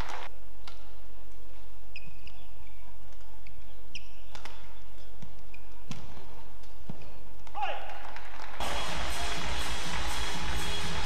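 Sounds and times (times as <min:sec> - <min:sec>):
shoes squeaking on court floor: 0:01.5 - 0:07.5
racket striking shuttlecock: 0:03.9 - 0:08.2.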